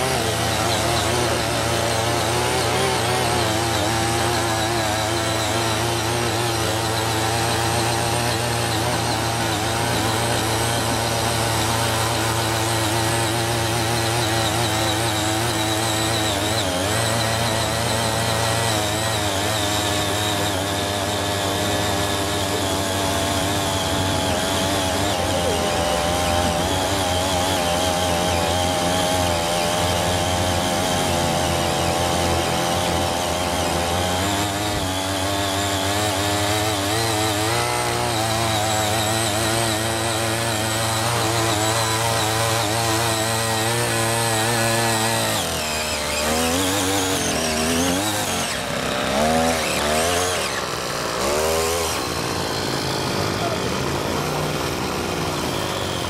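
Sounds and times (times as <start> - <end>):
tiller engine running: 0.0 - 56.0
tines churning soil: 0.0 - 56.0.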